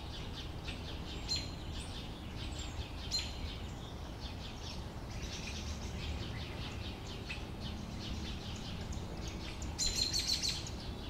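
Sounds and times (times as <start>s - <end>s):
sparrows chirping: 0.0s - 11.0s.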